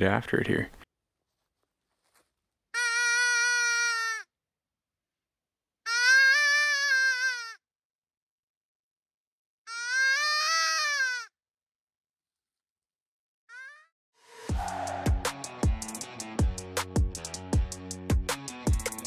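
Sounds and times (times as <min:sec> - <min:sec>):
wavering predator call cries: 0:02.8 - 0:04.3, 0:05.9 - 0:07.6, 0:09.7 - 0:11.3, 0:14.5 - 0:15.6.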